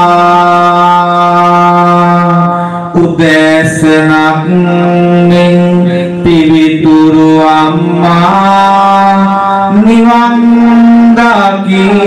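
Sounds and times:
person chanting in held notes: 0.0 - 12.0.

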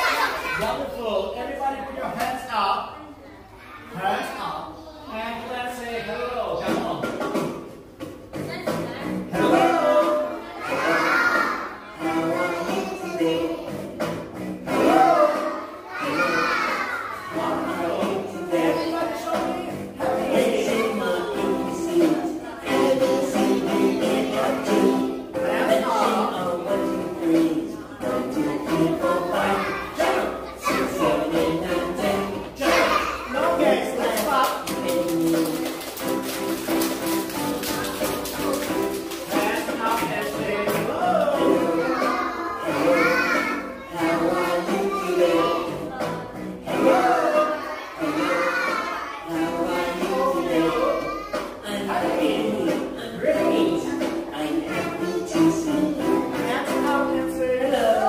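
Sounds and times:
children cheering: 0.0 - 0.6, 15.2 - 17.4
young children singing: 0.0 - 0.9, 9.3 - 58.0
children's song with a beat: 0.0 - 1.0, 6.5 - 58.0
children clapping: 34.0 - 41.3.

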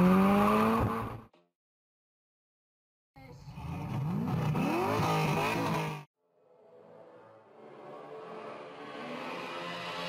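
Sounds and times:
car engine revving hard: 0.0 - 1.2, 3.6 - 6.1.

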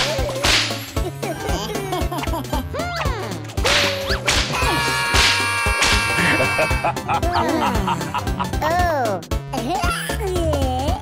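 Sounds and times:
bouncy background music: 0.0 - 11.0
cartoon whip cracks: 0.4 - 0.8, 3.6 - 6.1.

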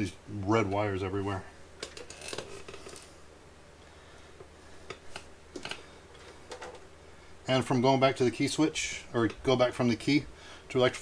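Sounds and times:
low steady hum: 0.0 - 11.0
hands handling wires clicks and rustles: 1.8 - 3.2, 4.4 - 6.9.

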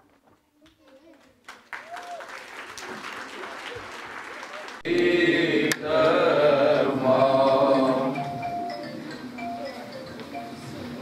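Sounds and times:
audience applause: 1.3 - 4.9.

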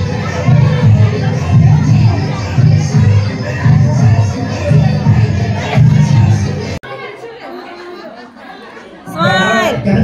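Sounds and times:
loud music with heavy bass beat: 0.0 - 6.8
indistinct chatter of people: 0.0 - 10.0.

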